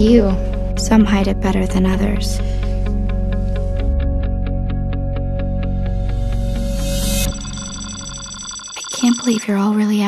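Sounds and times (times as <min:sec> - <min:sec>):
film trailer music: 0:00.0 - 0:08.5
high ringing electronic tone: 0:06.7 - 0:09.6.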